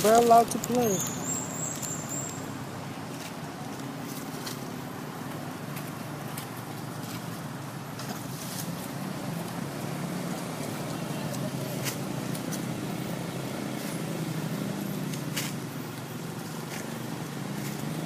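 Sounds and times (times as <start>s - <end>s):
traffic engine hum: 0.0s - 18.0s.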